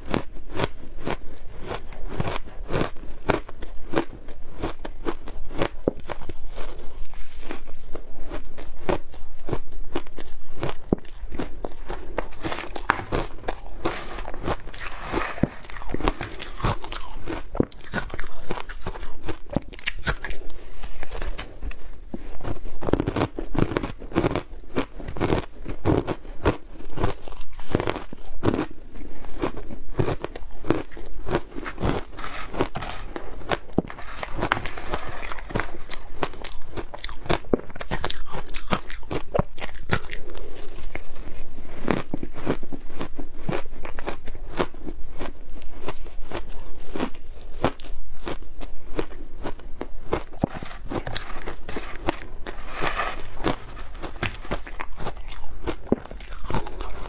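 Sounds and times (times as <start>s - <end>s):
chewing crunchy shaved ice: 0.0s - 57.0s.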